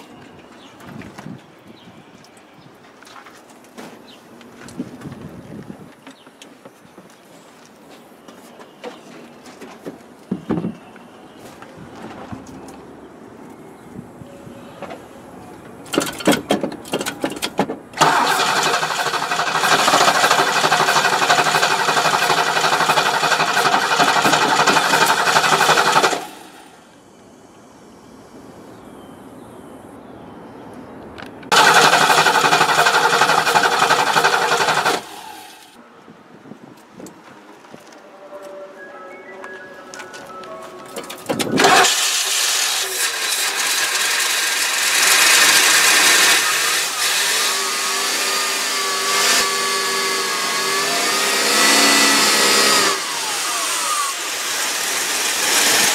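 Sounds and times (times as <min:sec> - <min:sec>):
misfiring car engine running: 0:15.9 - 0:26.5, 0:31.5 - 0:35.4, 0:41.4 - 0:55.9.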